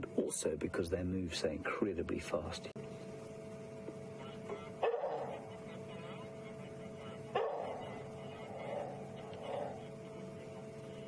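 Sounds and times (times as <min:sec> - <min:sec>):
faint steady hum: 0:00.0 - 0:11.0
wild dog hoo call: 0:04.2 - 0:10.7.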